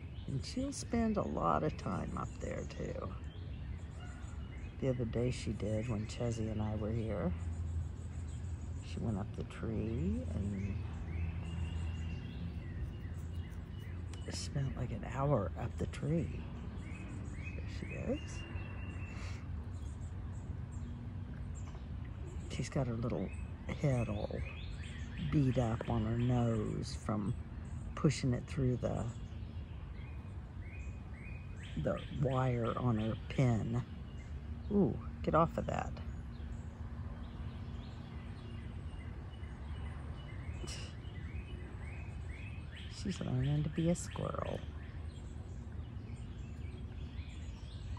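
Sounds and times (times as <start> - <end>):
low outdoor rumble: 0.0 - 47.9
high bird chirps: 9.9 - 14.8.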